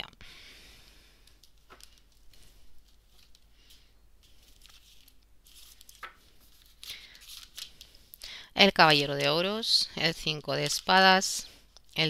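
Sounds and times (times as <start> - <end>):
cards shuffling and clicking: 1.3 - 3.5.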